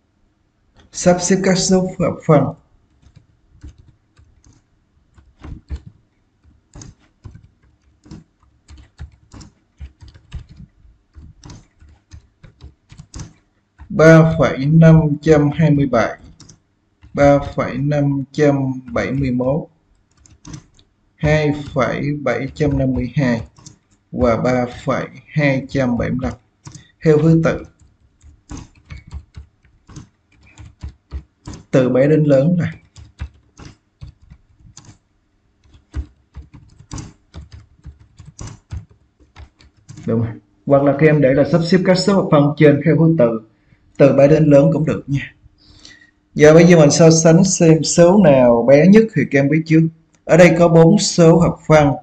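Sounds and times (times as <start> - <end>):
typing on computer keyboard: 2.9 - 17.8, 18.4 - 24.9, 25.6 - 40.1.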